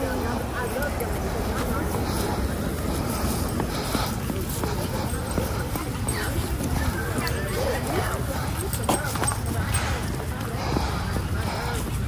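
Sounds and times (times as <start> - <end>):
faint voices: 0.0 - 12.0
footsteps on pavement: 0.0 - 12.0.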